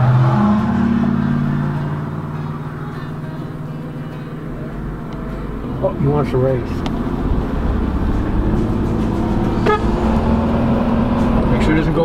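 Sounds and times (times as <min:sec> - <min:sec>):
car engine hum: 0:00.0 - 0:12.0
road rumble: 0:00.0 - 0:12.0.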